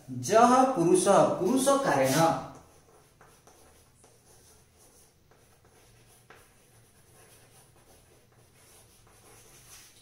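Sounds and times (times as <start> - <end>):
chalk scratching on blackboard: 1.4 - 10.0
chalk tapping: 1.4 - 10.0.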